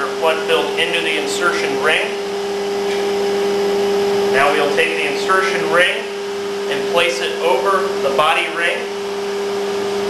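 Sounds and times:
machine hum with hiss: 0.0 - 10.0.

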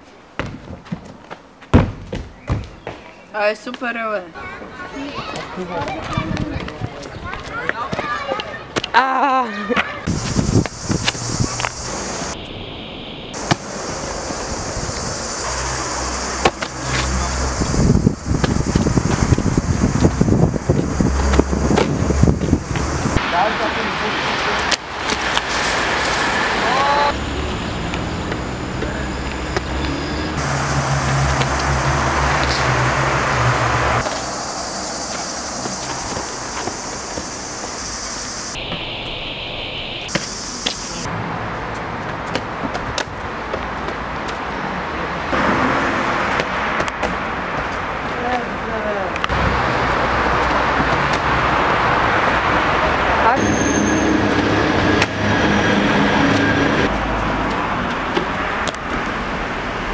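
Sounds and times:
traffic: 0.0 - 59.9
footsteps on concrete: 0.4 - 9.0, 18.3 - 23.2, 35.1 - 37.8
wind on microphone: 10.1 - 12.7, 17.0 - 23.2.

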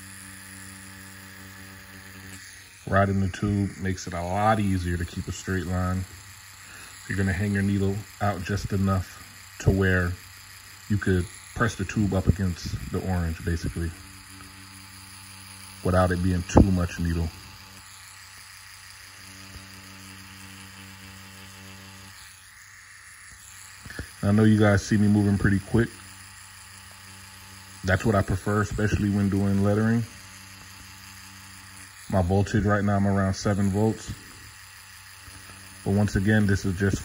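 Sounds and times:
tattoo machine humming: 0.0 - 37.0
person speaking: 2.8 - 17.8, 23.8 - 26.2, 27.7 - 30.2, 31.8 - 34.4, 35.7 - 37.0.

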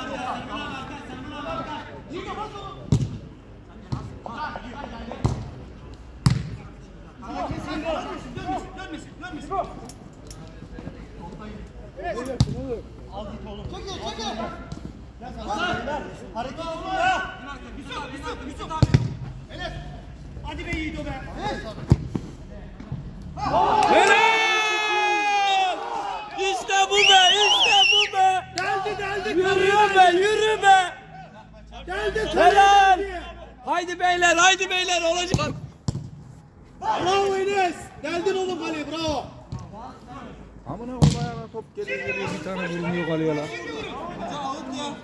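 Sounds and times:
football kicks: 6.2 - 6.6, 35.3 - 36.3, 41.0 - 41.4
players shouting: 23.4 - 35.5, 36.8 - 39.4, 41.8 - 45.0.

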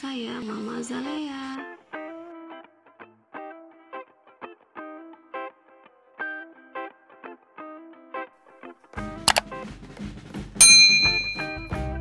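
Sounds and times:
background music: 4.6 - 12.0
quick double click: 9.3 - 9.5
bright bell ding: 10.6 - 11.9.

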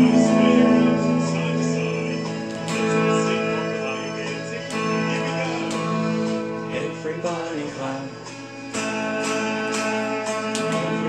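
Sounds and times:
electric guitar strumming: 0.0 - 11.0.

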